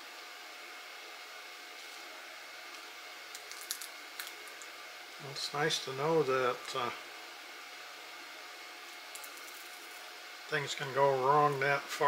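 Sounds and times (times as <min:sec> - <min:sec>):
faint hum: 0:00.0 - 0:12.0
room noise hiss: 0:00.0 - 0:12.0
tape crackling: 0:02.7 - 0:04.7.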